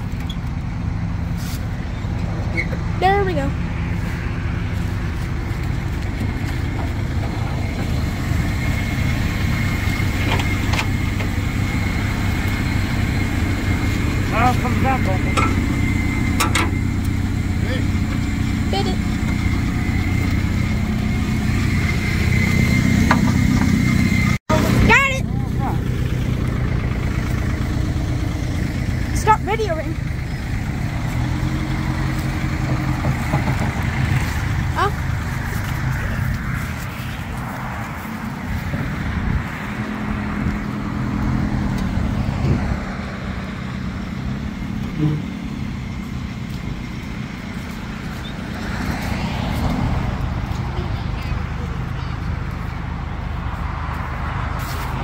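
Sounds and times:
engine idling: 0:00.0 - 0:55.0.

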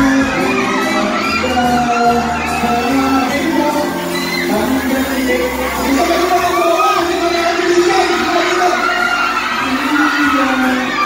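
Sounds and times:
backing music: 0:00.0 - 0:11.0
crowd cheering and calling out: 0:00.0 - 0:11.0
man speaking through microphone: 0:00.0 - 0:11.0.

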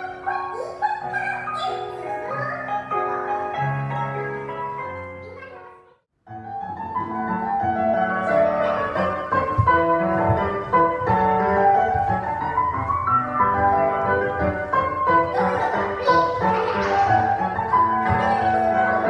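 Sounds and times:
classical piano music: 0:00.0 - 0:19.0.

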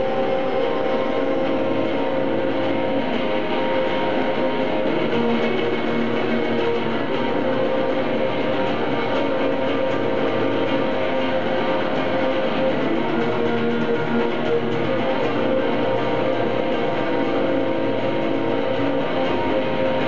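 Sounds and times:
electric guitars playing: 0:00.0 - 0:20.0.

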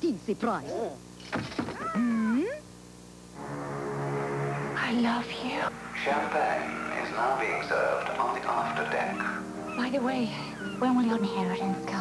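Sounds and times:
soft music with held notes: 0:03.4 - 0:12.0
cat meowing: 0:09.2 - 0:11.0.

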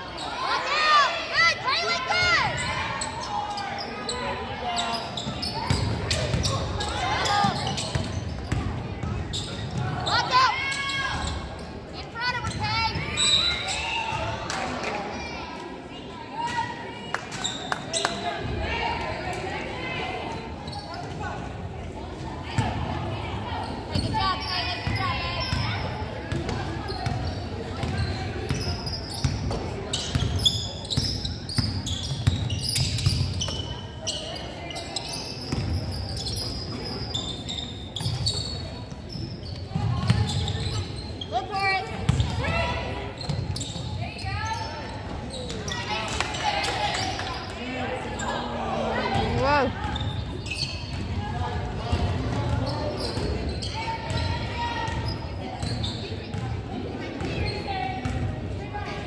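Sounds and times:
voices of players and spectators: 0:00.0 - 0:59.0.

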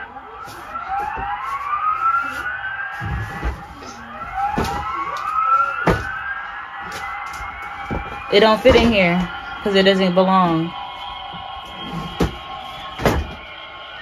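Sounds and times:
toy siren wailing: 0:00.0 - 0:14.0.

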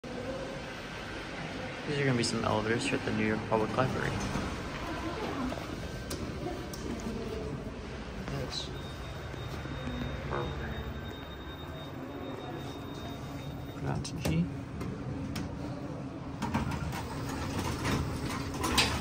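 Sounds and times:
faint high steady tone: 0:08.2 - 0:14.0.

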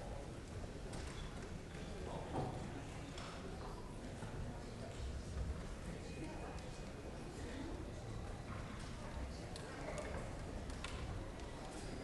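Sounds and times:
murmur of many people talking: 0:00.0 - 0:12.0.

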